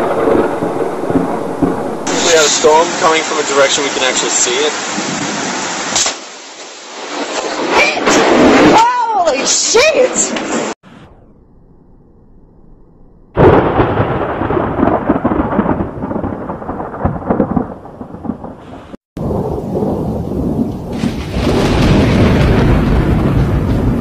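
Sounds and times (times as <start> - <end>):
thunder crack and rumble: 0.0 - 11.9, 13.2 - 24.0.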